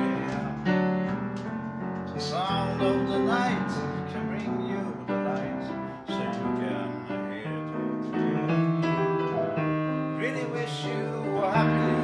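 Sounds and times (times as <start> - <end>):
upright piano playing: 0.0 - 12.0
person singing: 10.1 - 12.0.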